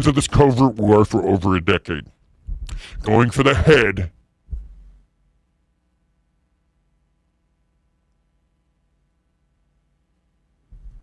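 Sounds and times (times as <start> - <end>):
faint low hum: 0.0 - 11.0
low thump: 4.5 - 4.9.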